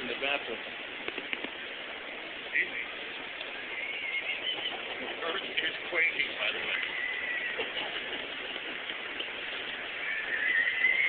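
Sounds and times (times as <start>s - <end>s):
distant voices: 0.0s - 11.0s.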